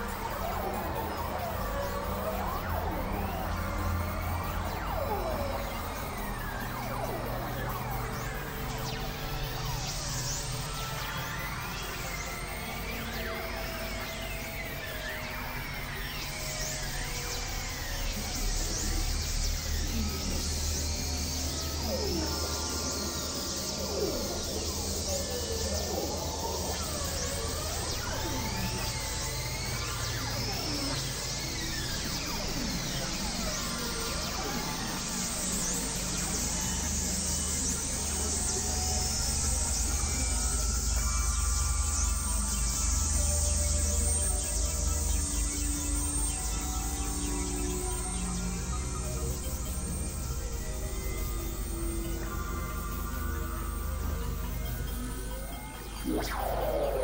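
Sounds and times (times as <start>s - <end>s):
experimental synthesizer music: 41.9s - 57.0s.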